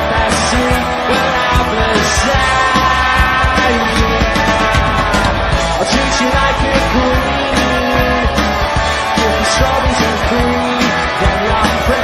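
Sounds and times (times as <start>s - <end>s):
rock band playing: 0.0s - 12.0s
steady drum beat: 0.0s - 12.0s.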